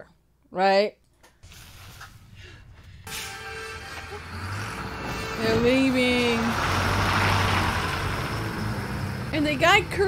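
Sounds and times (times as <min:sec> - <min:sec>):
bus engine rumble: 0:01.4 - 0:10.0.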